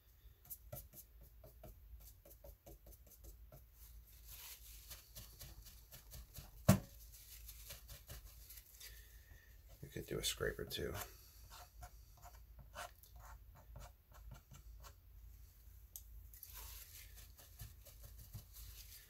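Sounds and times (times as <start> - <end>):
paintbrush dabbing on paper: 0.4 - 8.8, 16.4 - 19.0.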